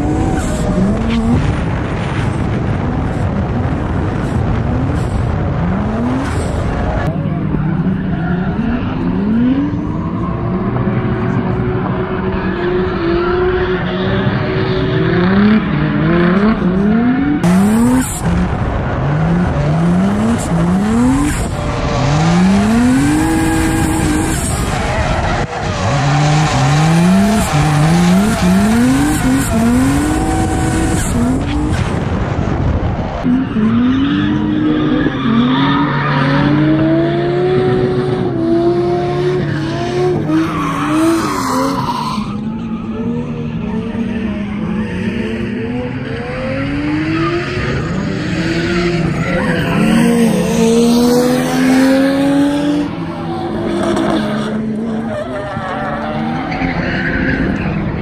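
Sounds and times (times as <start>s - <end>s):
car engines revving hard: 0.0s - 58.0s.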